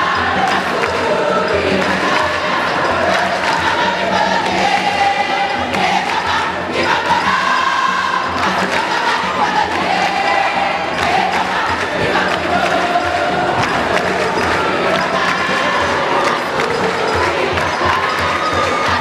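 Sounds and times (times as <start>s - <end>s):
crowd of girls singing: 0.0s - 19.0s.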